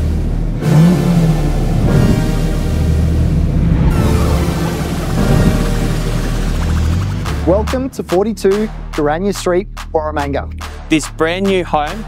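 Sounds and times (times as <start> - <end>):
car engine revving: 0.0 - 8.6
background music: 0.0 - 12.0.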